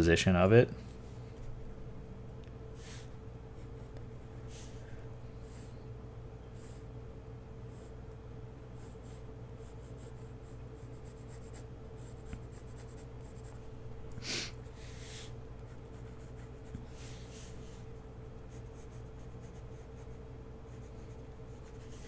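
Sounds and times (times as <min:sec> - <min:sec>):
low hum: 0:00.6 - 0:11.2
pencil scratching on paper: 0:08.8 - 0:13.6, 0:15.7 - 0:17.4, 0:18.5 - 0:22.0.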